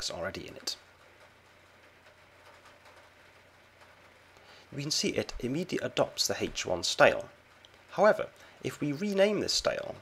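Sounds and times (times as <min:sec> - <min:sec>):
faint low hum with hiss: 0:00.0 - 0:10.0.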